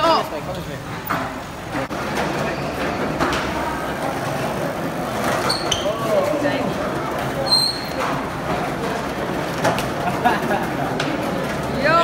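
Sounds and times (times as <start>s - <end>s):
wheels rolling on concrete: 0.2s - 12.0s.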